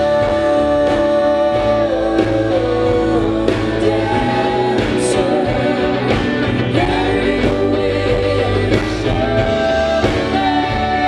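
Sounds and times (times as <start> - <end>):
live rock band playing: 0.0 - 11.0
person singing: 0.0 - 11.0.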